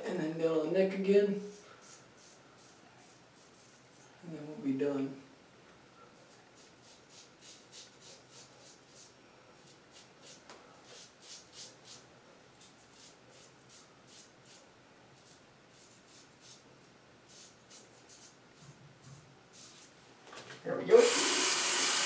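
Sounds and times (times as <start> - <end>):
razor scraping over stubble: 1.5 - 4.2.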